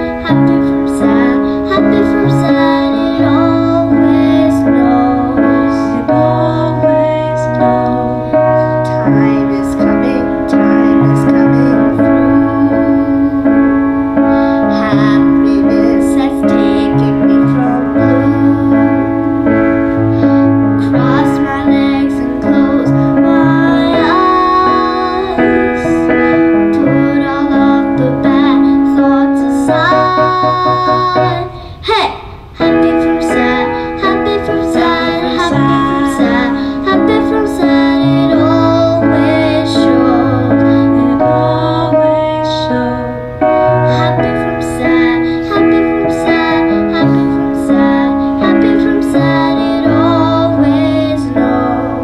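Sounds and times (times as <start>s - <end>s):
electric keyboard accompaniment: 0.0s - 52.0s
girl singing: 0.0s - 52.0s.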